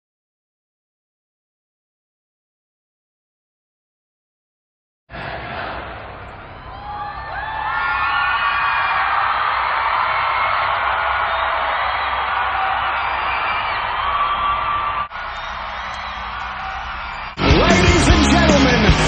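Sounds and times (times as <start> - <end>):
concert crowd cheering and screaming: 5.2 - 19.0
high rising whoops: 6.6 - 18.0.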